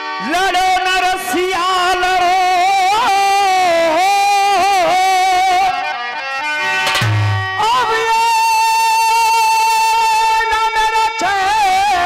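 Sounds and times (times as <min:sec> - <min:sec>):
instrumental music: 0:00.0 - 0:11.5.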